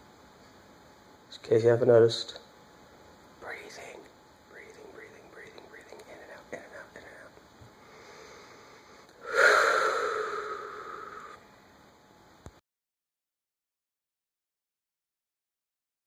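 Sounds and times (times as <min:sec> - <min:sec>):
man breathing effortfully: 0:07.8 - 0:11.4.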